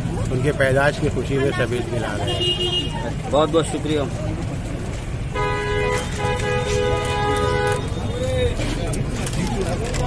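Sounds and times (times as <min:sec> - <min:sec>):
low rumble of street traffic: 0:00.0 - 0:10.0
vehicle horn honking: 0:02.3 - 0:03.0, 0:05.3 - 0:08.0.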